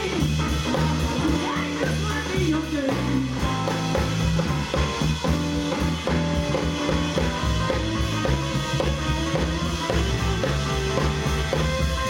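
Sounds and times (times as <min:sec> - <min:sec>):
drum kit: 0:00.0 - 0:12.0
electric guitar: 0:00.0 - 0:12.0
upright double bass: 0:00.0 - 0:12.0.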